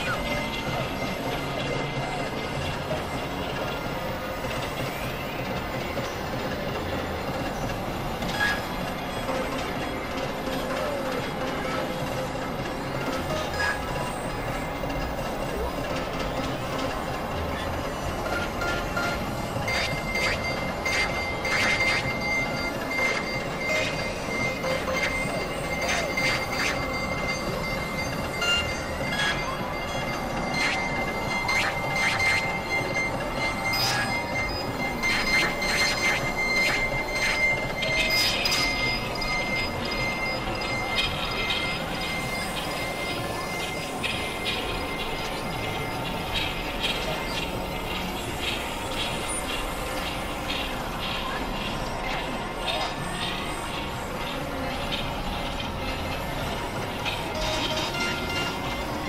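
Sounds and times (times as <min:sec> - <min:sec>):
faint wavering tones: 0:00.0 - 0:59.0
grinding electronic noise: 0:00.0 - 0:59.0
screeching synth sweeps: 0:00.0 - 0:59.0.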